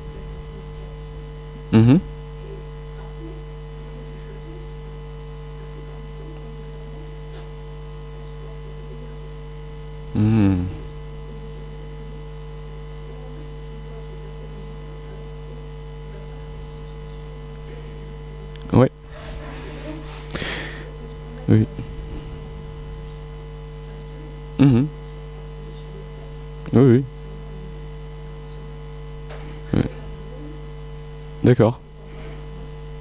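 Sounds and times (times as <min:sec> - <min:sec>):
murmured voice: 0:00.0 - 0:07.6, 0:10.1 - 0:11.7, 0:12.5 - 0:30.8
electrical mains hum: 0:00.0 - 0:33.0.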